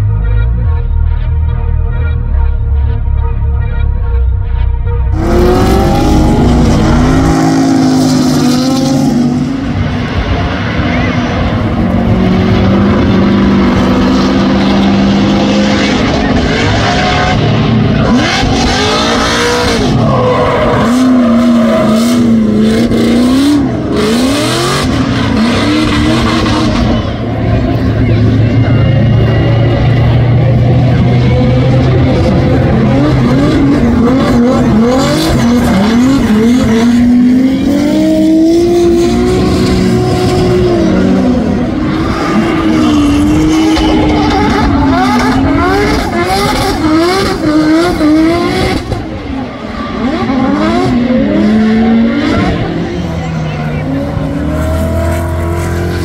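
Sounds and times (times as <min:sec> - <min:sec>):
car engines revving hard: 0:05.1 - 0:56.0.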